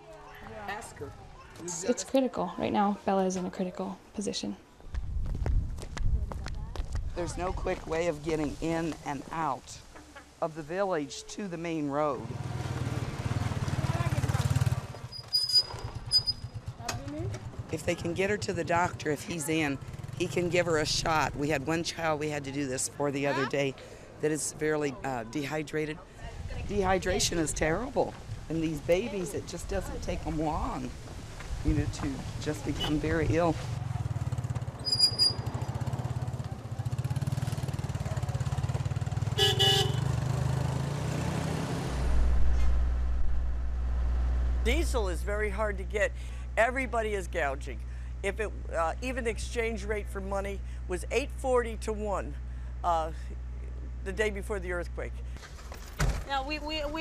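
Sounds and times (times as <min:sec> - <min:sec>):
motorcycle engine passing: 0:12.2 - 0:21.8, 0:32.2 - 0:45.0
short high squeak: 0:15.1 - 0:16.6, 0:34.8 - 0:35.5
horn toot: 0:39.3 - 0:40.2.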